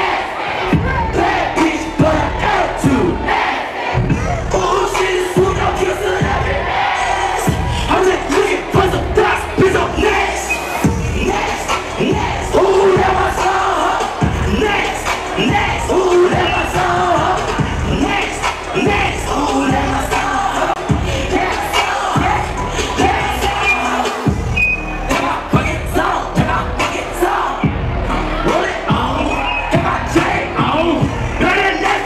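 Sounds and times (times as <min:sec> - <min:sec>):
crowd shouting and cheering: 0:00.0 - 0:32.0
loud hip hop music: 0:00.0 - 0:32.0.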